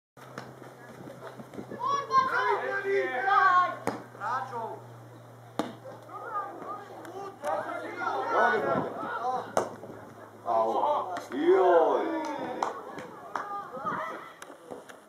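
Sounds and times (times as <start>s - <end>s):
young players shouting: 1.8s - 4.8s, 6.1s - 14.4s.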